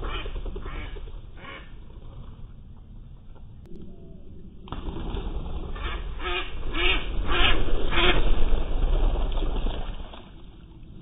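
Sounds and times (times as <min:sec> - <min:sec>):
ducks quacking: 0:00.0 - 0:01.7, 0:05.7 - 0:08.3
steady low rumble: 0:00.0 - 0:11.0.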